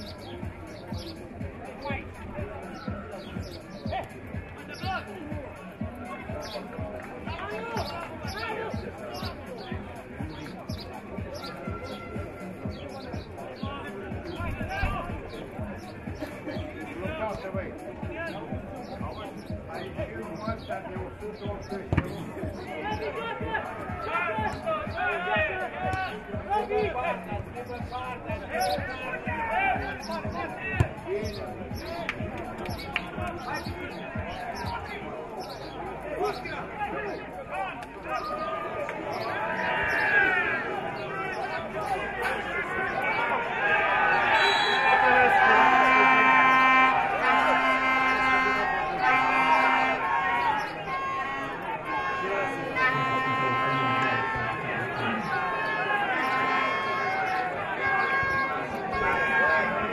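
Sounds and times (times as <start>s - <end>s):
steady drum beat: 8.1s - 34.3s
spectators shouting: 11.0s - 59.9s
football being kicked: 21.9s - 22.2s.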